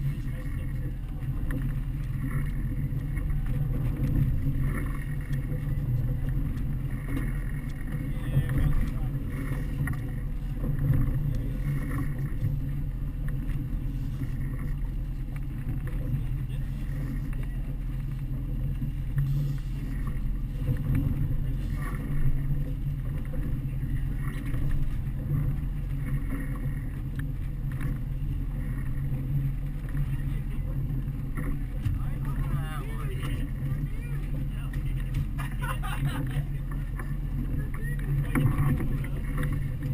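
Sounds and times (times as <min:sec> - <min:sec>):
boat wake wash: 0:00.0 - 0:39.9
outboard motors running: 0:00.0 - 0:39.9.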